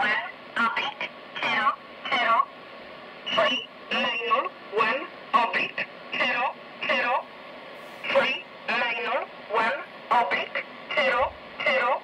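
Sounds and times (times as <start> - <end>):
person reading out words: 3.3 - 12.0
shortwave hiss: 5.9 - 8.7.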